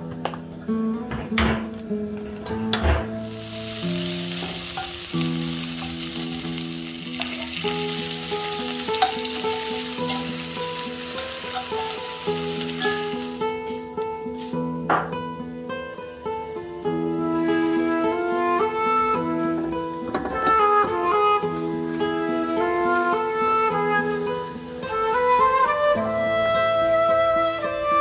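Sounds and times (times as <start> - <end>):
soft background music: 0.0 - 28.0
vegetables sizzling in a pan: 3.1 - 14.6.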